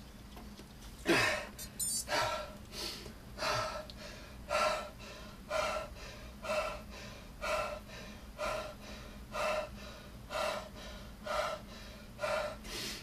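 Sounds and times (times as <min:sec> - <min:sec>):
man panting heavily: 0:01.0 - 0:13.0.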